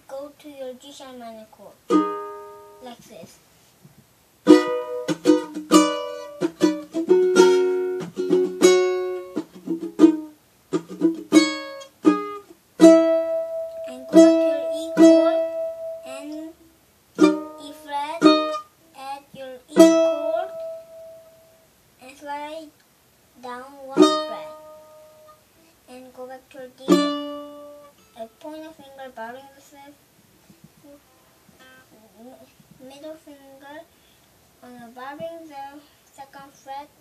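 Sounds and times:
ukulele chords strummed: 1.9 - 3.0, 4.4 - 16.5, 17.2 - 18.7, 19.7 - 21.5, 23.9 - 25.4, 26.8 - 28.6.

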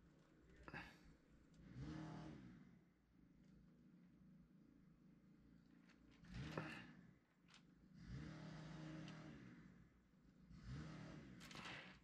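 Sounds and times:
small petrol engine revving: 1.6 - 2.8, 6.2 - 6.9, 7.9 - 12.0.

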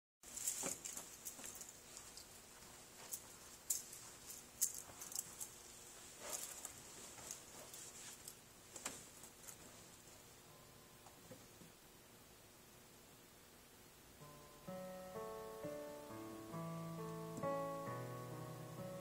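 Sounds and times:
faint steady hiss: 0.2 - 19.0.

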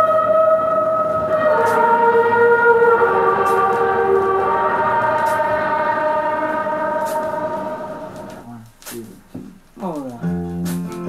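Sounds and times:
sustained held notes from vinyl record: 0.0 - 11.0.

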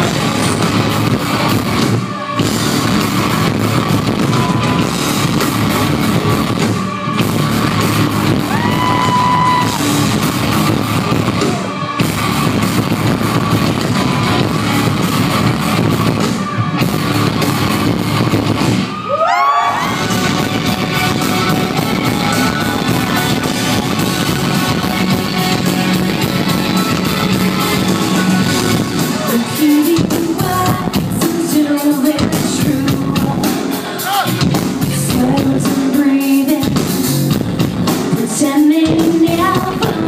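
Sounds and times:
live rock band: 0.0 - 40.0.

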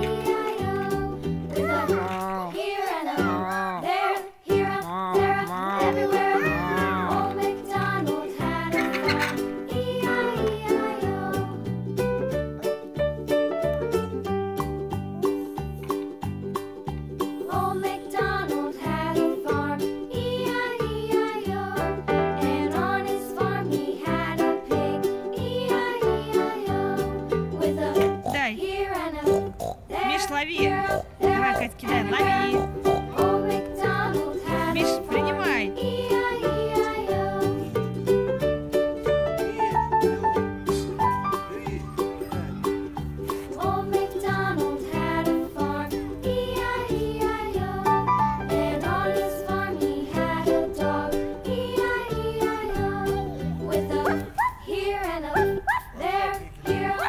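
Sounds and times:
children's background music: 0.0 - 57.0
recorded cartoon pig voice: 1.6 - 2.5, 5.6 - 7.0, 28.2 - 28.6, 29.2 - 33.2, 41.4 - 42.5
short rising yelps: 54.0 - 54.8, 55.4 - 56.2.

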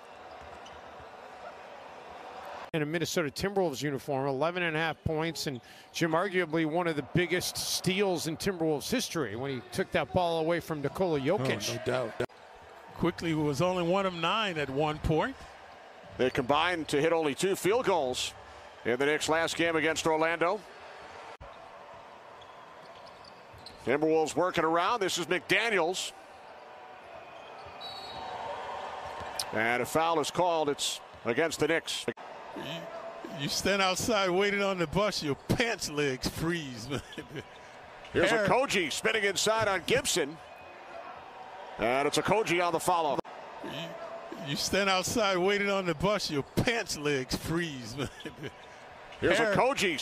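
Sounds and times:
arena ambience: 41.8 - 50.0.

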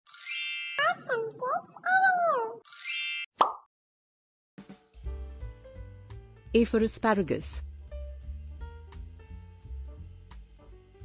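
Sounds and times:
sparkling chime: 0.1 - 0.8
high child-like voice speaking: 0.8 - 2.6.

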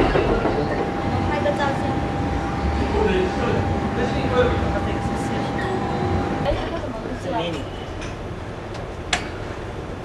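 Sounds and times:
train carriage running: 0.0 - 10.0.

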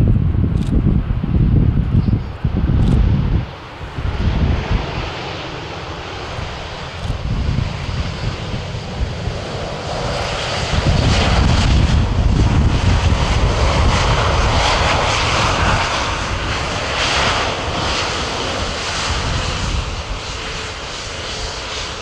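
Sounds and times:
jet engines hissing and rumbling: 0.2 - 22.0.

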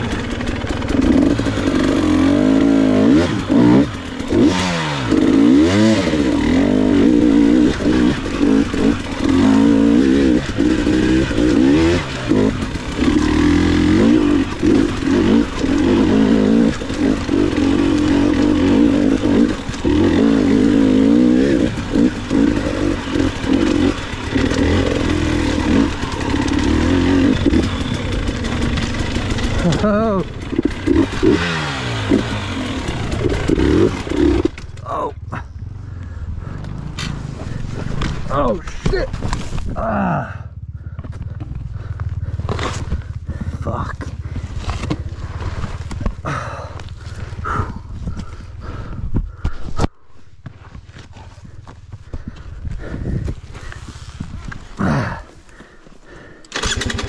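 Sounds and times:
dirt bike engine revving: 0.0 - 49.5, 52.1 - 57.0.

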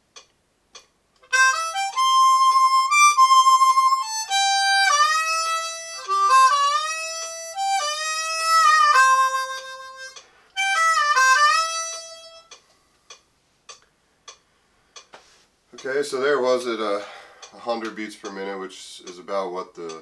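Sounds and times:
faint metronome clicks: 0.0 - 2.0, 9.5 - 10.3, 11.8 - 16.0, 17.4 - 20.0
harmonica country lick: 1.2 - 12.6.

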